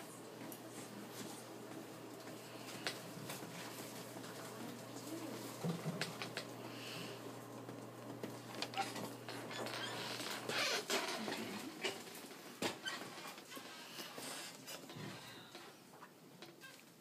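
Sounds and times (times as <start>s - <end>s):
electric bed motor humming: 0.0s - 12.3s.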